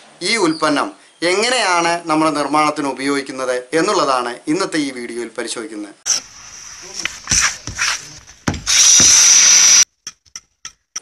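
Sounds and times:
loud steady tool noise: 0:06.1 - 0:09.9
tool scraping concrete block: 0:06.1 - 0:11.0.

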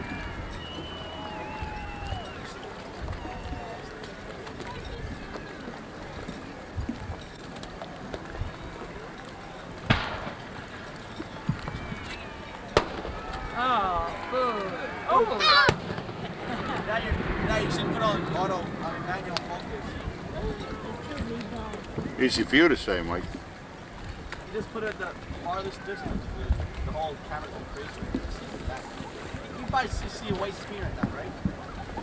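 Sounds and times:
people talking: 0:02.2 - 0:07.1, 0:13.4 - 0:23.3, 0:24.5 - 0:32.0
fireworks bangs with echo: 0:09.9 - 0:10.6, 0:12.8 - 0:13.5.

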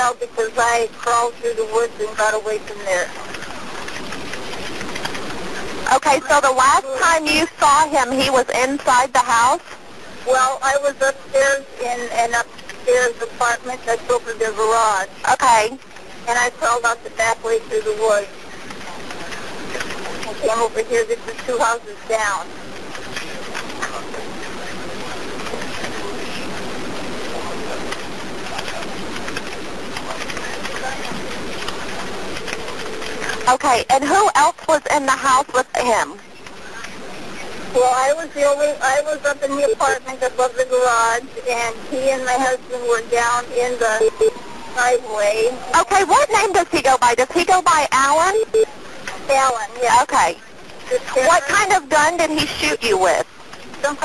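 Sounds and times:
faint voices murmuring: 0:00.0 - 0:54.0
telephone line hiss and static: 0:00.0 - 0:54.0
phone line hiss: 0:43.5 - 0:46.4, 0:47.4 - 0:52.8.

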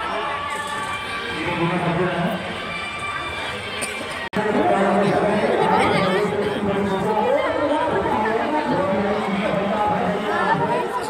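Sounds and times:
crowd talking: 0:00.0 - 0:11.0.

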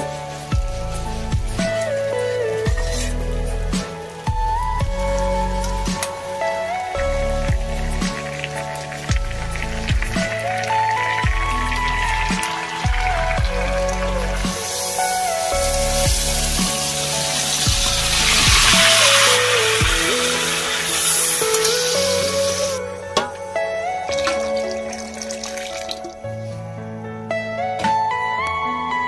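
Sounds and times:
background music with beat: 0:00.0 - 0:29.0
hiss of liquid poured into wok: 0:05.4 - 0:22.8.

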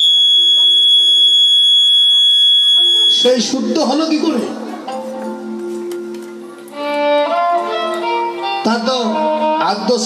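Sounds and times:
microphone feedback whistle: 0:00.0 - 0:03.6.

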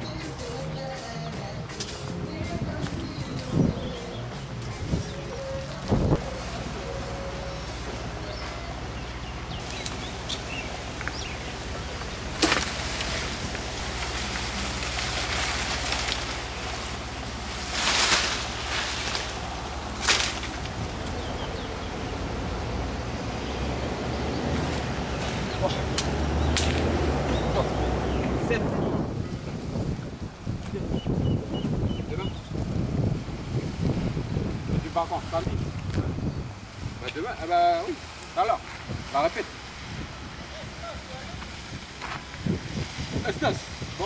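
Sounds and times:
leaves and branches rustling: 0:00.0 - 0:44.0
wind rumble on microphone: 0:01.7 - 0:44.0.

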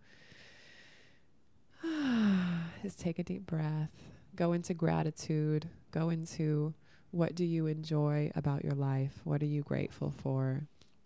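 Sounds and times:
faint breath in: 0:00.0 - 0:02.8
woman sighing: 0:01.8 - 0:02.8.

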